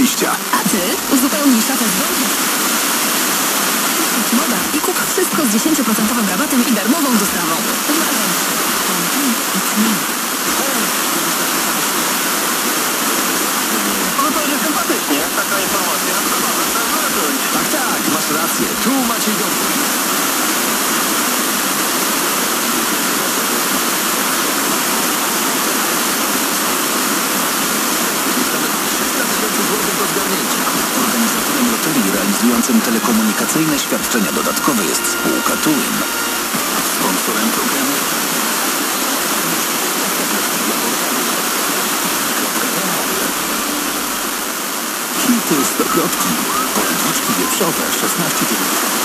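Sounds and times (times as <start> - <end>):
radio static hiss: 0.0 - 49.0.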